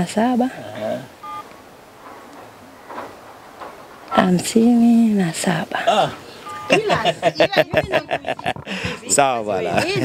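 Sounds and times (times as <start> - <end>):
phone keypad beeps: 1.2 - 1.5, 6.4 - 6.9.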